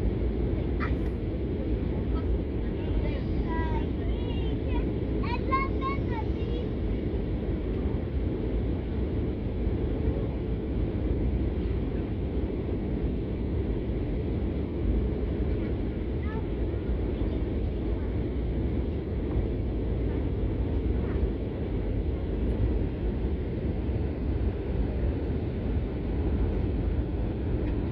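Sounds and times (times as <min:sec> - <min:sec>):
airliner cabin engine rumble: 0:00.0 - 0:27.9.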